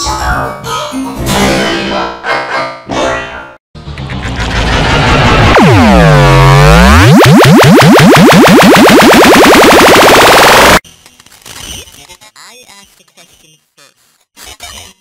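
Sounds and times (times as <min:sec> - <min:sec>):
distorted processed voice: 0:01.6 - 0:03.6, 0:11.6 - 0:15.0.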